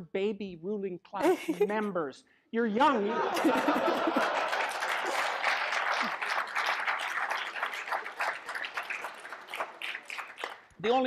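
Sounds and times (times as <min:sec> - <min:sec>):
audience applauding: 0:03.4 - 0:10.8.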